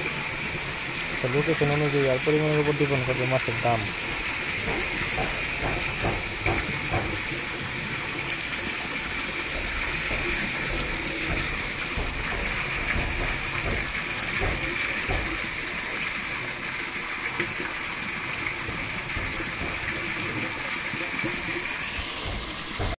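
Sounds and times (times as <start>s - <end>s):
water-like hiss: 0.0s - 17.7s, 18.4s - 23.0s.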